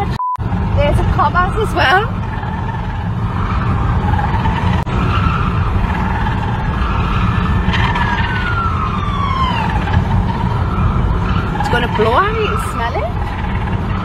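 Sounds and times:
car road and engine rumble: 0:00.0 - 0:14.0.

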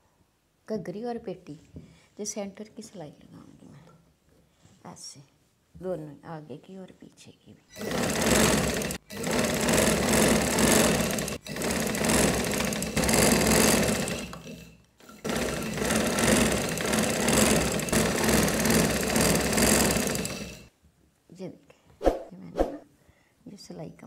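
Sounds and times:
sewing machine running: 0:07.8 - 0:20.7.

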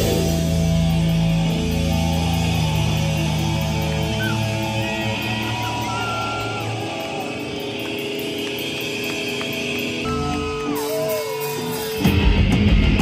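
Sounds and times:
electric guitar feedback: 0:00.0 - 0:13.0
punk band playing: 0:00.0 - 0:13.0.

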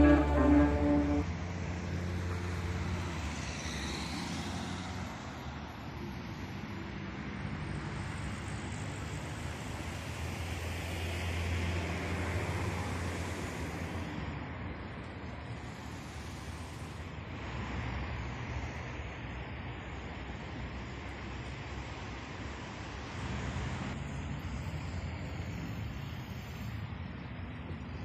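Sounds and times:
car passing close: 0:00.0 - 0:05.3
cars driving past: 0:00.0 - 0:28.0.

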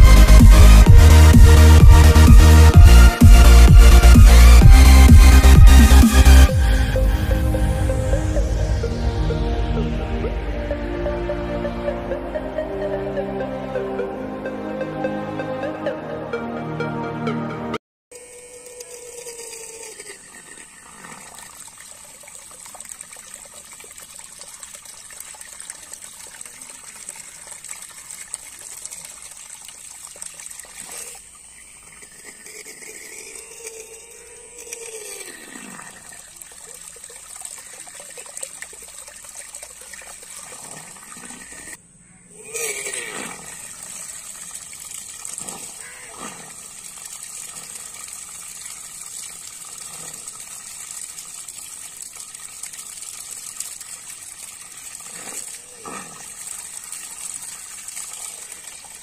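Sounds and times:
water pump jet splashing: 0:18.1 - 0:41.8, 0:42.7 - 0:59.0.

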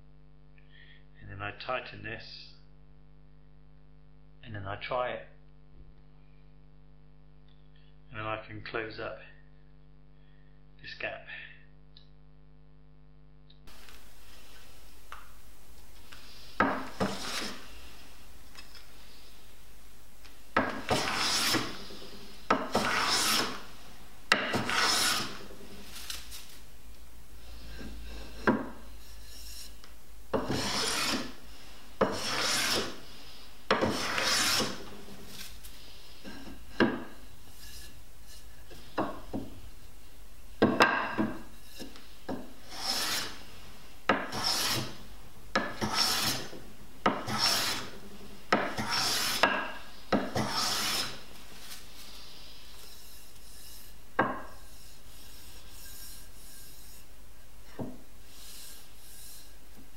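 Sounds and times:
hand plane swishing strokes: 0:16.1 - 0:18.0, 0:20.6 - 0:26.6, 0:27.4 - 0:36.5, 0:37.5 - 0:39.4, 0:40.8 - 0:43.5, 0:44.1 - 0:57.1, 0:58.3 - 0:59.6.

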